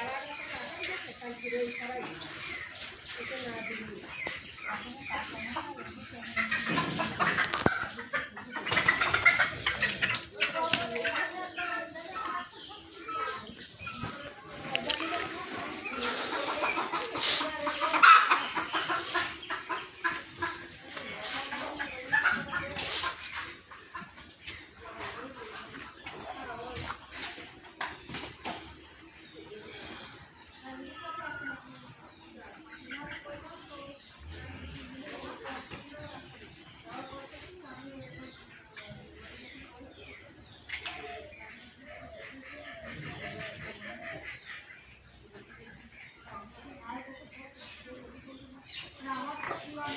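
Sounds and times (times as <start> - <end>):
chickens clucking: 0.0 - 49.9.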